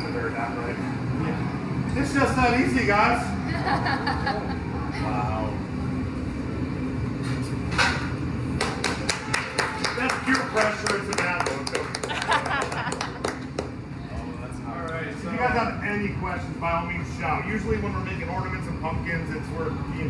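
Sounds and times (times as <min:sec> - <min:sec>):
audience clapping: 0:08.6 - 0:13.8.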